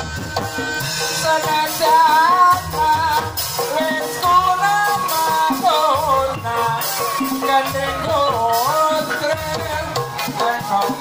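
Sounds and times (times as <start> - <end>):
barrel drum: 0.0 - 11.0
gamelan music: 0.0 - 11.0
metal percussion: 0.0 - 11.0
ornamented melody line: 0.0 - 11.0.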